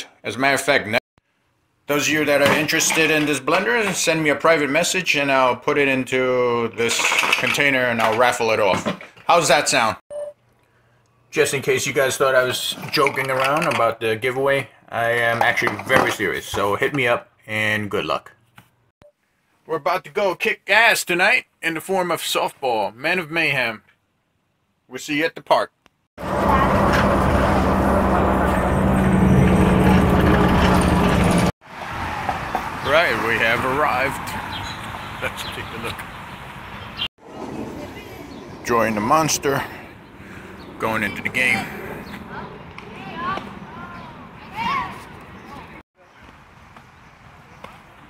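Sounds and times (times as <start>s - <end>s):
vehicle engine humming: 26.2s - 45.5s
road noise: 26.2s - 48.0s
faint outdoor background noise: 31.7s - 48.0s.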